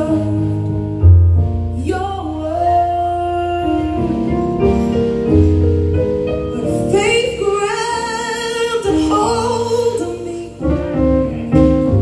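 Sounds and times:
woman singing gospel song: 0.0s - 0.6s, 1.8s - 4.4s, 6.6s - 10.8s
instrumental accompaniment: 0.0s - 12.0s.

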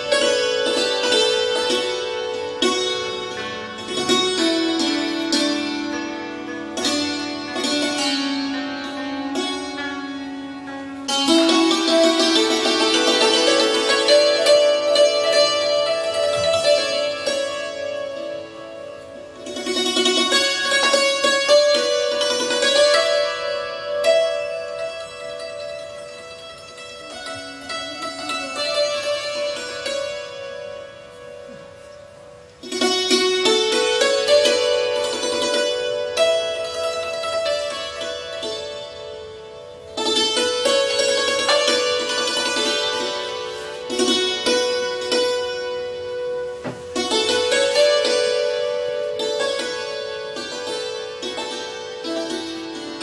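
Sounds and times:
hammered dulcimer and plucked lute: 0.0s - 53.0s.

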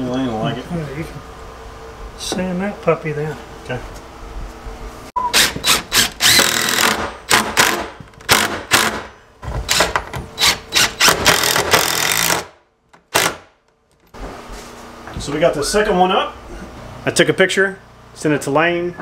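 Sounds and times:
cordless drill driving screws: 5.3s - 9.0s, 9.7s - 12.5s.

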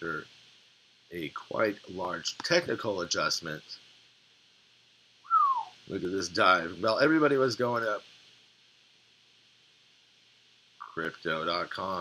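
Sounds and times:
man whistling falling note: 5.3s - 5.8s.

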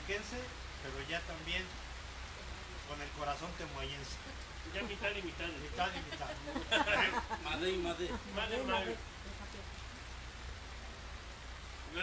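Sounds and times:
rain hissing: 0.0s - 12.0s.

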